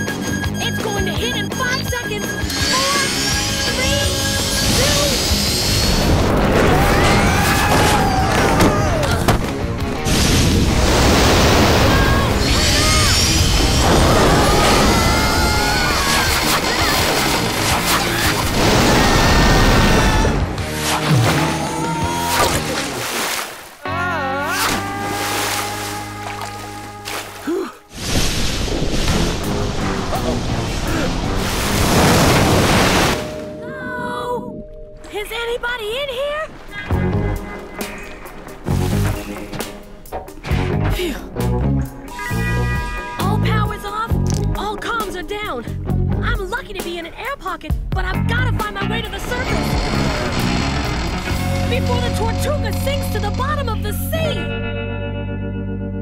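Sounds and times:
cartoon background music: 0.0s - 22.8s, 36.8s - 56.0s
rushing crashing water effects: 10.0s - 23.8s, 24.6s - 33.5s.

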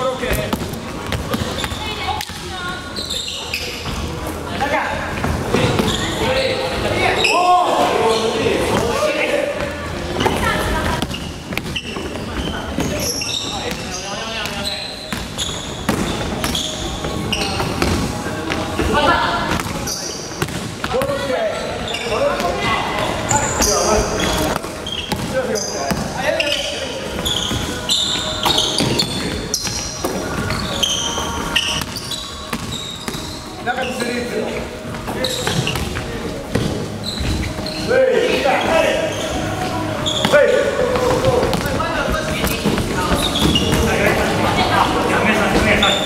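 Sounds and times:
sneakers squeaking: 0.0s - 46.0s.

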